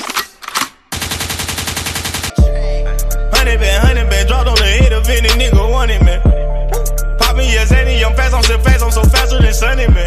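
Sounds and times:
machine-gun fire: 0.9s - 2.4s.

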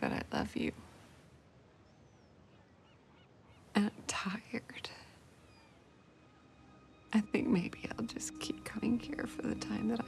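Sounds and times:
quiet held music notes: 3.8s - 10.0s.

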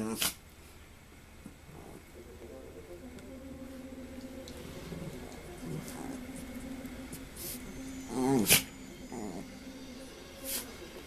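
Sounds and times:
small dogs growling: 1.7s - 2.8s, 3.7s - 11.0s.

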